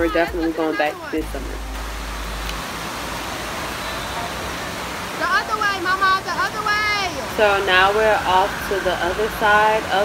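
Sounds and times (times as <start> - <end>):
low rumble: 1.2 - 3.3.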